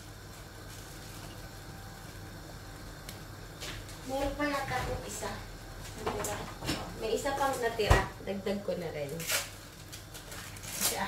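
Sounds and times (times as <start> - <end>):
sauce simmering in a pan: 0.0 - 4.1
low kitchen hum: 0.0 - 11.0.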